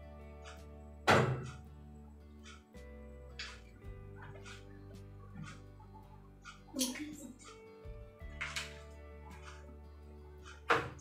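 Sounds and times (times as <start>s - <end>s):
background music sustained notes: 0.0s - 11.0s.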